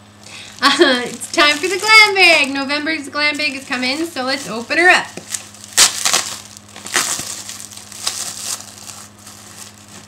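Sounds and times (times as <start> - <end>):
packaging crinkling: 0.2 - 10.0
package being torn open: 4.4 - 10.0.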